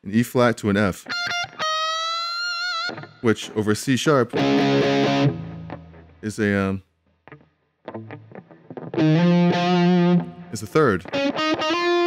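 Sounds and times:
electric guitar picked notes: 4.3s - 6.2s, 7.2s - 12.0s.

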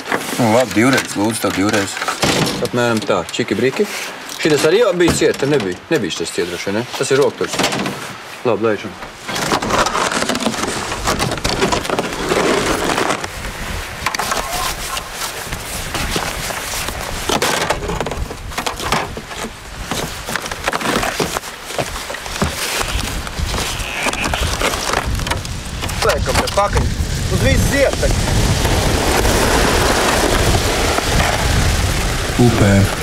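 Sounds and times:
slush ice crackling hiss: 12.1s - 17.1s, 22.6s - 33.0s
kayak gear knocking on rocks: 14.0s - 26.9s.

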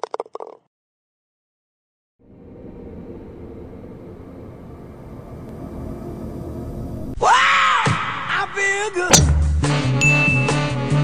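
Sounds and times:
faint hum: 2.2s - 7.2s
low rumble: 2.2s - 7.2s.

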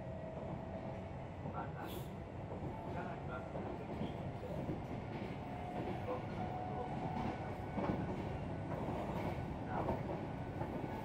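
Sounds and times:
electric train running rumble: 0.0s - 11.0s.

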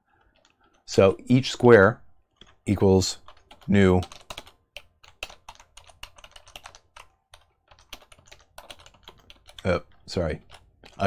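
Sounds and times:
computer keyboard typing: 0.1s - 1.1s, 2.2s - 11.0s.

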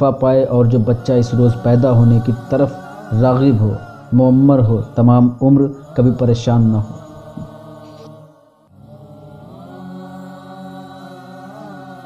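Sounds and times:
chant-like background music: 0.0s - 12.0s.

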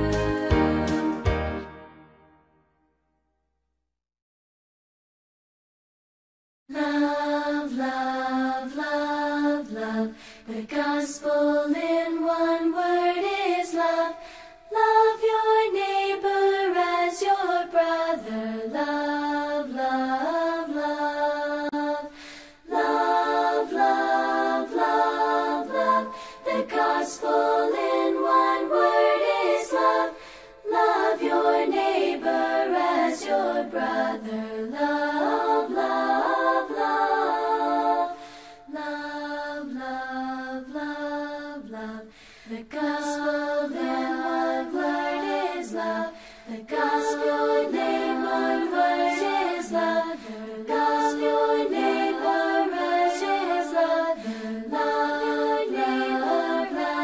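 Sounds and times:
person singing children's song: 22.7s - 57.0s.

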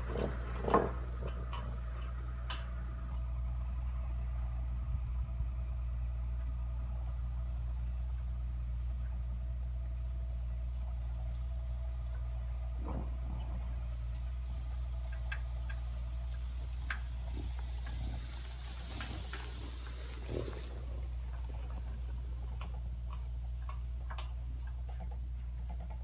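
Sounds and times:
low mechanical hum: 0.0s - 26.0s
faint clicks: 12.1s - 26.0s.

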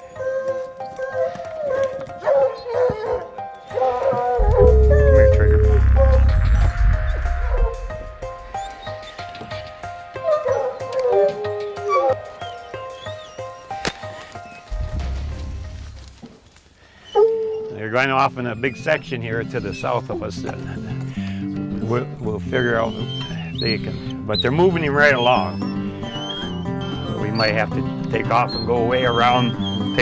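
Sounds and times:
hounds baying and yipping: 0.0s - 15.2s, 16.9s - 21.5s, 22.5s - 30.0s
loud low rumble: 4.4s - 8.8s.

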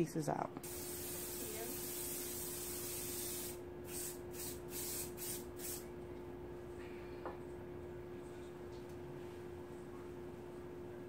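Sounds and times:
aerosol spray can spraying: 0.6s - 5.9s.

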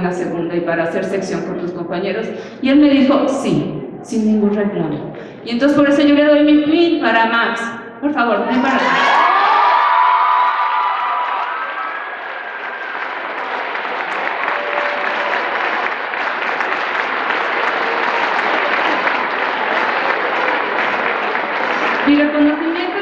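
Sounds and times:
audience applauding: 8.7s - 23.0s.

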